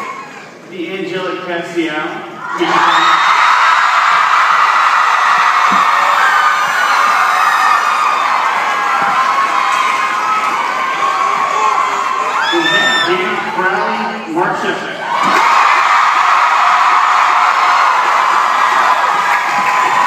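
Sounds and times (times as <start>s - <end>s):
audience cheering and screaming: 2.4s - 13.7s, 15.0s - 20.0s.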